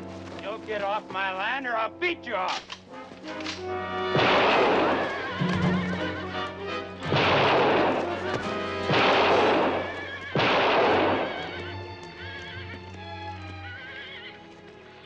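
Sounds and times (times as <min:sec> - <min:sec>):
horses whinnying: 0:08.5 - 0:15.0.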